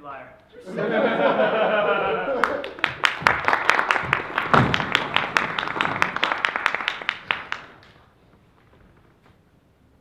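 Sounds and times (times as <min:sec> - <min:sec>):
audience laughing: 0:00.6 - 0:03.0
audience applauding: 0:01.8 - 0:08.2.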